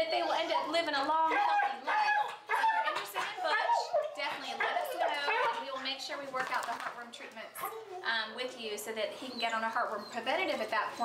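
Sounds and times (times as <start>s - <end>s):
dog vocalizing: 0.0s - 6.0s.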